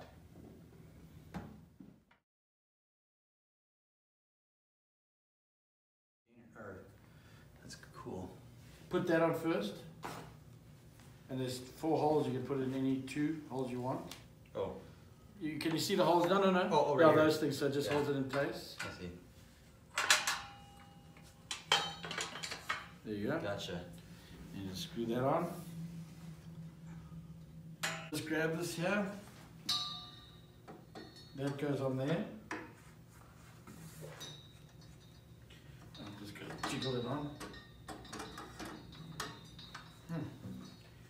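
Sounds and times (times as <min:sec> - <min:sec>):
metal grate clanking on metal: 0:19.9 - 0:20.9, 0:21.5 - 0:23.0, 0:29.7 - 0:31.8, 0:34.2 - 0:41.0
metal bracket clicking and rattling: 0:19.9 - 0:23.0, 0:34.2 - 0:40.9.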